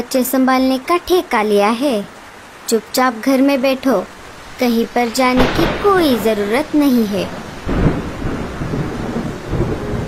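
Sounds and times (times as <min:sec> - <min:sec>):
heavy rain falling: 0:00.0 - 0:10.0
thunder rumbling: 0:04.1 - 0:10.0.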